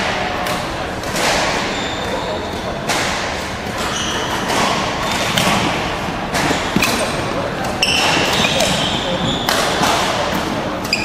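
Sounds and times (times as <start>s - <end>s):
echoing background chatter: 0.0s - 11.0s
shoes squeaking on floor: 1.6s - 2.7s, 3.8s - 5.7s, 6.4s - 10.2s
racket striking shuttlecock: 4.4s - 11.0s.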